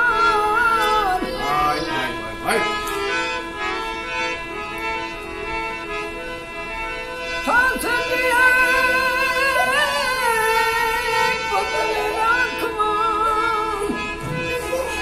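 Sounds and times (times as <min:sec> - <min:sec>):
old man singing: 0:00.0 - 0:02.6, 0:07.4 - 0:15.0
harmonium melody: 0:00.0 - 0:15.0.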